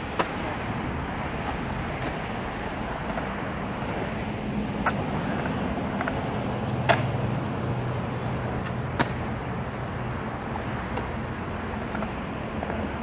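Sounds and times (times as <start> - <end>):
skateboard clacks: 0.0 - 13.0
skateboard wheels rolling on concrete: 0.0 - 13.0.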